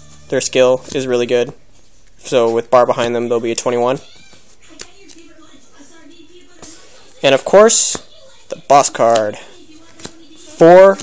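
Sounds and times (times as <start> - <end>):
handling cards on cloth mat: 0.0 - 11.0
card tapping: 8.8 - 11.0.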